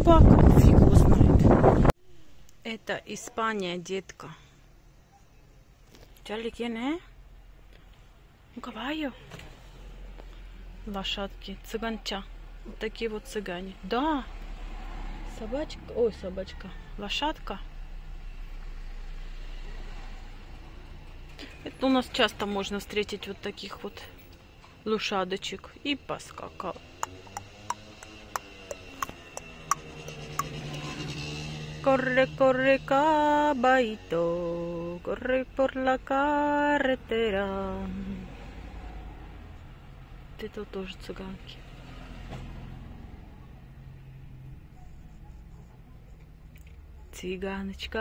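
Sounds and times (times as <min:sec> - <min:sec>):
car engine hum from inside: 0:26.4 - 0:48.0.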